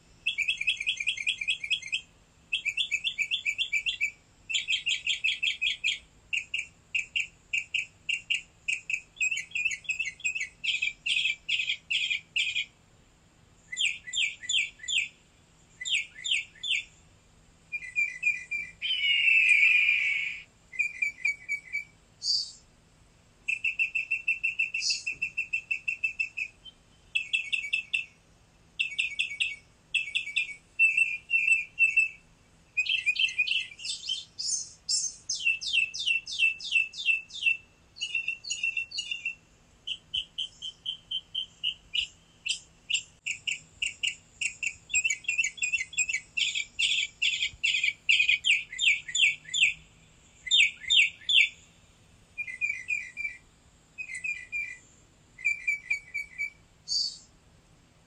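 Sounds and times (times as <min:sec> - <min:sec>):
songbirds chirping and trilling: 0:00.0 - 0:58.0.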